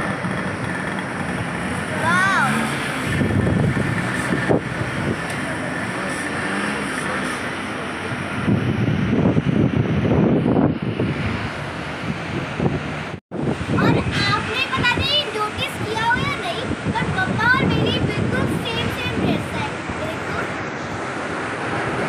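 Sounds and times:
white-water rapids rushing: 0.0 - 8.6, 12.8 - 22.0.

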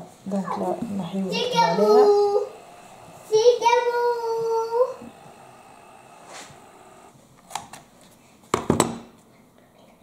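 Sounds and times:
label maker motor whine: 0.5 - 7.2
label maker clicks: 0.8 - 7.1.

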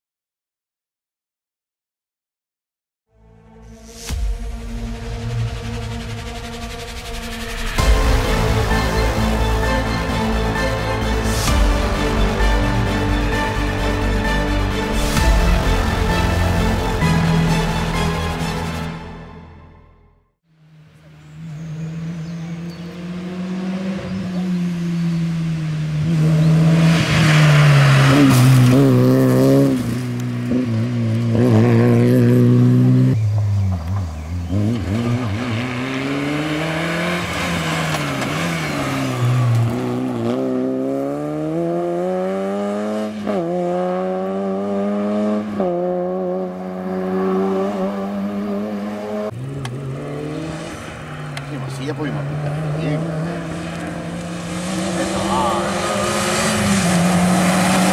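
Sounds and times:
rally car engine revving: 20.6 - 57.9.

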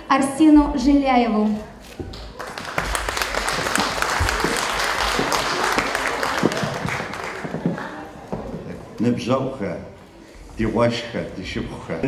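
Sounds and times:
audience applauding: 2.1 - 9.2.

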